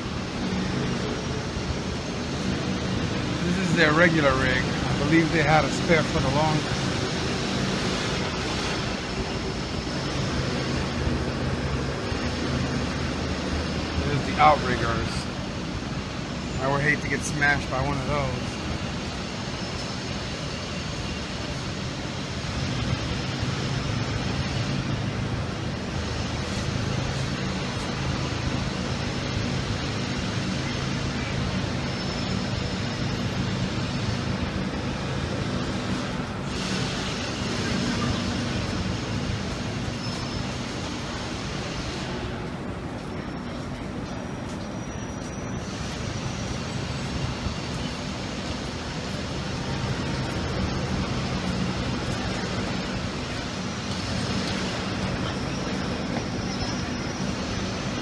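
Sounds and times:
diesel engine running: 0.0s - 58.0s.

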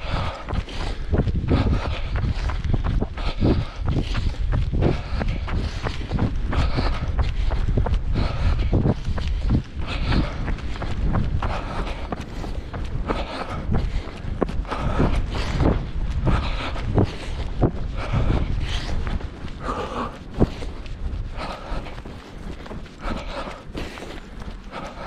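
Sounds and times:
jogging footsteps on grass and dirt: 0.0s - 25.0s
wind rumble on microphone: 0.0s - 25.0s.

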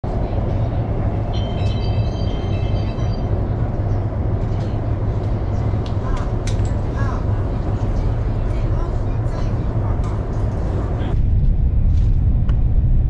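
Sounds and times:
train rumble inside cabin: 0.0s - 13.0s
high steady tones: 1.2s - 3.6s.

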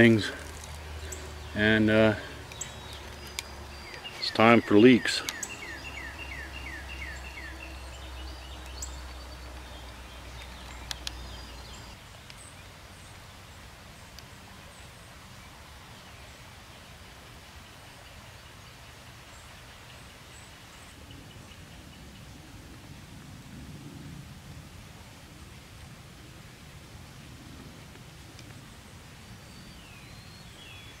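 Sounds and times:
low steady rumble: 0.0s - 12.0s
songbird whistling: 2.6s - 9.0s
sharp clicks: 10.3s - 12.0s.

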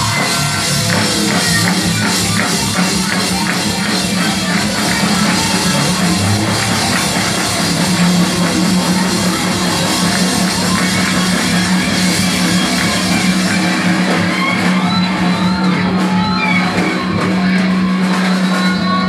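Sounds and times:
bending guitar notes: 0.0s - 19.0s
rock band playing live: 0.0s - 19.0s.

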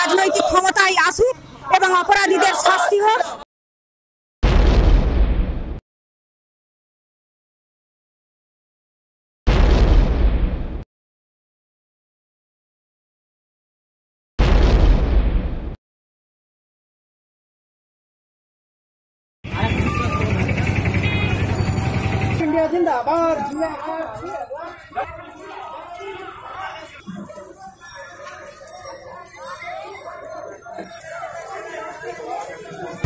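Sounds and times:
people's voices: 0.0s - 3.4s, 19.5s - 33.0s
vehicle engine running: 19.5s - 22.8s.

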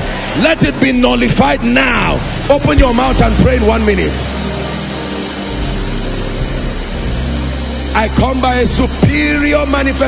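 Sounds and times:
sustained low chords: 0.0s - 10.0s.

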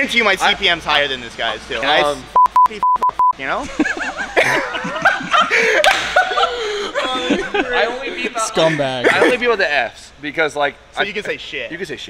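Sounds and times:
men laughing and chuckling: 3.6s - 9.6s.

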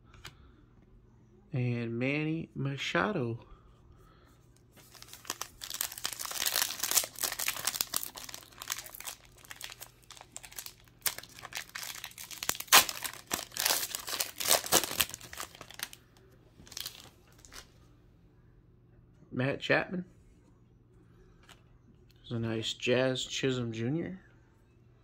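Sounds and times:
foil wrapper crinkling and tearing: 4.8s - 16.0s, 16.6s - 17.7s.

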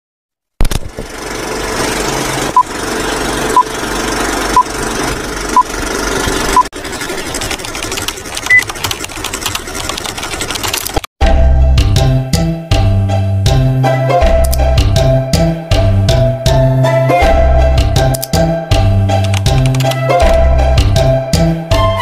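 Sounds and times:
film projector clatter: 2.2s - 11.1s
music: 11.2s - 22.0s.

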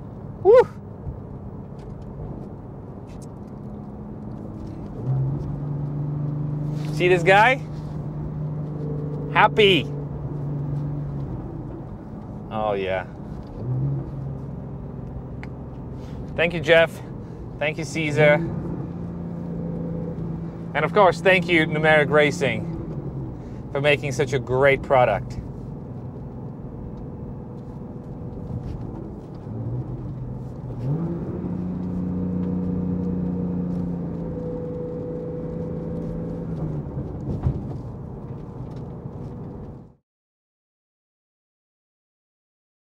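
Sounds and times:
car engine from inside cabin: 0.0s - 40.0s
road noise: 0.0s - 40.0s.

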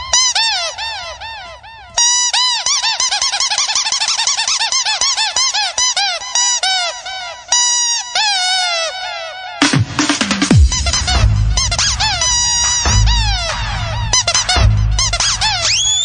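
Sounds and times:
electronic chirping: 10.8s - 16.0s.

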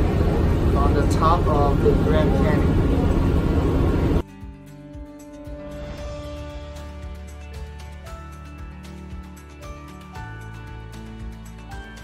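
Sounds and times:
bus engine and road rumble: 0.0s - 4.2s
background music with held notes: 4.2s - 12.0s.

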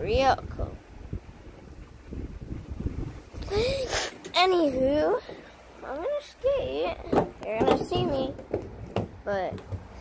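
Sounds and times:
wind buffeting microphone: 0.0s - 5.0s.

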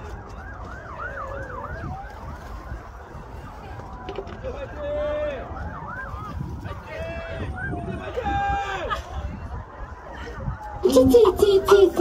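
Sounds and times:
siren yelping and wailing: 0.0s - 8.2s, 9.3s - 12.0s.

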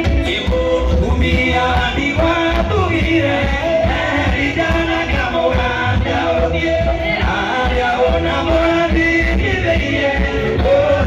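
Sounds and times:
amplified band music with bass beat: 0.0s - 11.0s
man singing into a microphone: 0.0s - 11.0s.

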